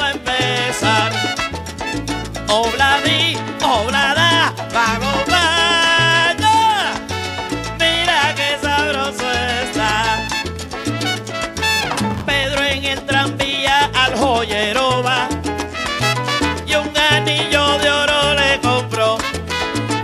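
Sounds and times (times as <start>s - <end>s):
instrumental salsa music: 0.0s - 20.0s.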